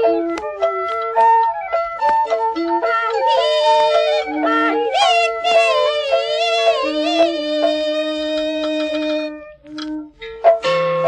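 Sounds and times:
accompanying instruments: 0:00.0 - 0:11.0
person singing opera: 0:02.8 - 0:09.5.

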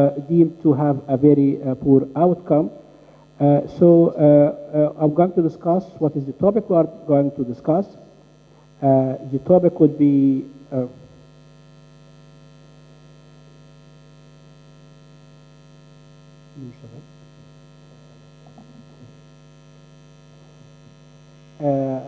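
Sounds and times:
electrical mains hum: 0:00.0 - 0:22.0.

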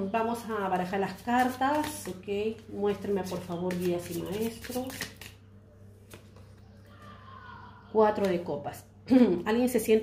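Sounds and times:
low steady hum: 0:00.0 - 0:10.0
cards being shuffled: 0:00.7 - 0:05.4, 0:06.0 - 0:06.6.

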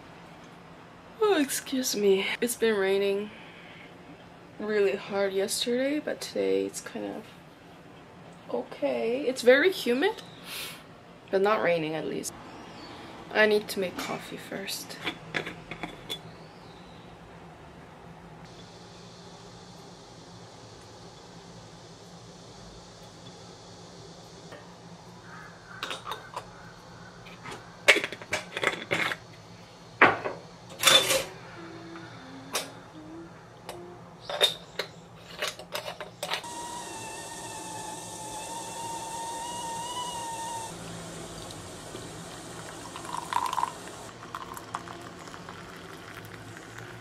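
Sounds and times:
water running: 0:36.4 - 0:47.0.

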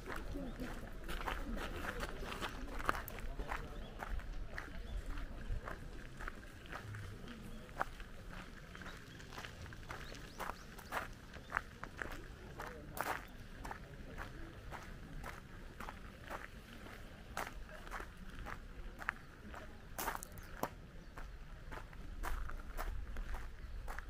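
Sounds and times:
footsteps on gravel: 0:00.0 - 0:24.0.

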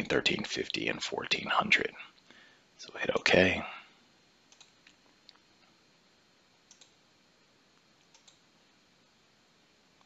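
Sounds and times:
computer mouse clicks: 0:04.5 - 0:05.4, 0:06.7 - 0:07.0, 0:08.0 - 0:08.5.

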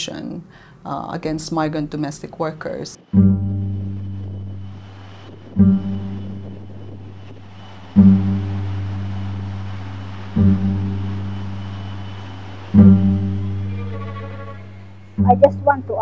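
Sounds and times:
low bass notes ringing: 0:01.4 - 0:16.0.

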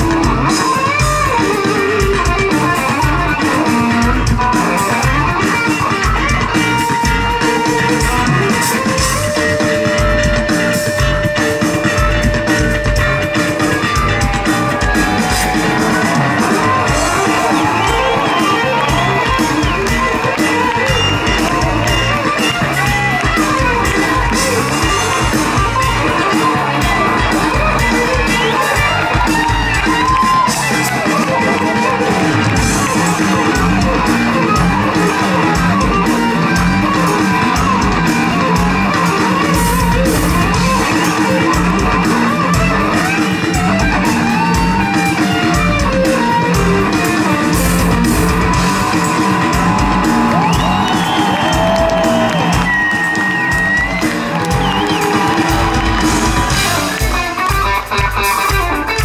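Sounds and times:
electric guitar solo: 0:00.0 - 0:59.0
rock band playing: 0:00.0 - 0:59.0.

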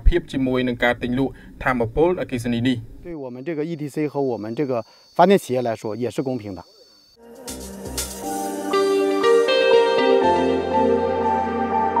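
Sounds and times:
man speaking: 0:00.0 - 0:06.8
insects droning: 0:00.0 - 0:09.2.

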